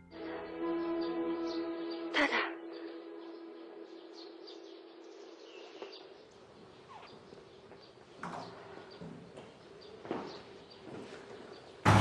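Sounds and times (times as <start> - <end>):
faint bird chirps: 1.5 - 7.8.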